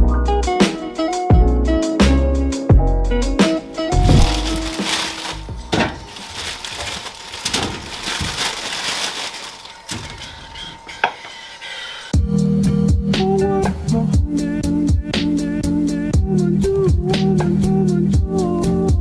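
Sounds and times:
background music with bass line: 0:00.0 - 0:04.8, 0:12.2 - 0:19.0
plastic bag crinkling: 0:03.9 - 0:10.2.

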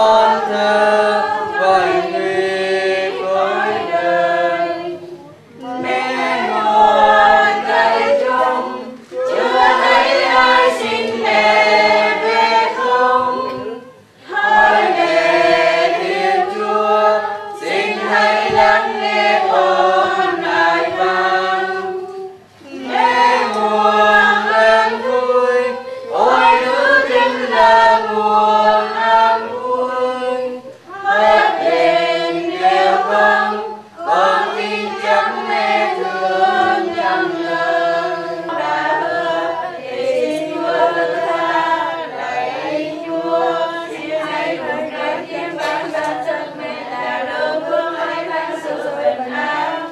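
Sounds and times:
group singing a hymn unaccompanied: 0:00.0 - 0:49.9.

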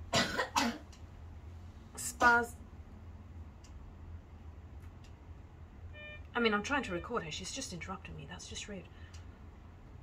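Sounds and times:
child coughing: 0:00.1 - 0:00.9.

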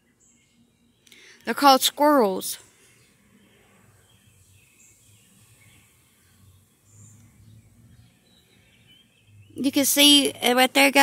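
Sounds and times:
faint bird chirps: 0:00.0 - 0:10.5.

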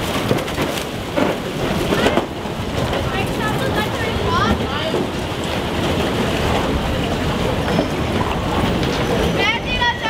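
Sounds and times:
ship engine rumble: 0:00.0 - 0:10.0.

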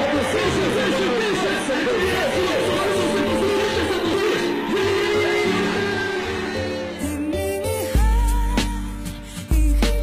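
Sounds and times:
song with held tones: 0:02.7 - 0:10.0.

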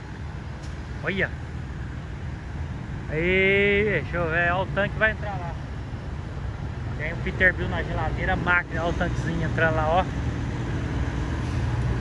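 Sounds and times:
diesel truck engines rumbling: 0:00.0 - 0:12.0.

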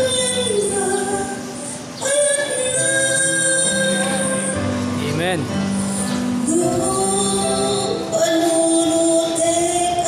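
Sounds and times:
woman singing gospel song: 0:00.0 - 0:04.7, 0:06.4 - 0:10.0.

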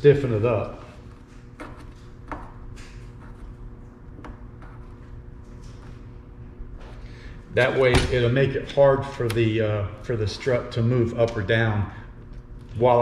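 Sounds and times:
steady background hum: 0:00.0 - 0:13.0.

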